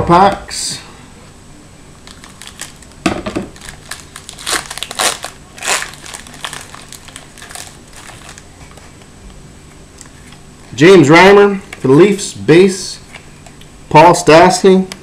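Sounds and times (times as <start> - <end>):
wrapper crinkling: 2.0 - 8.8.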